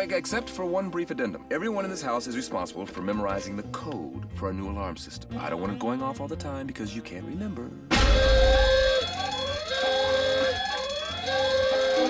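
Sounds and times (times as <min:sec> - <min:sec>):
burglar alarm siren: 0:07.9 - 0:12.0.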